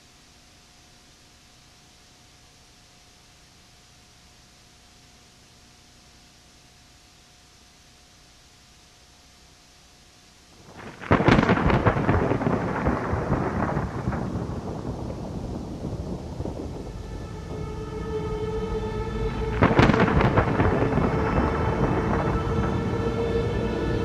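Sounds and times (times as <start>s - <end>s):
low drone note: 10.6s - 24.0s
thunderclaps: 10.6s - 24.0s.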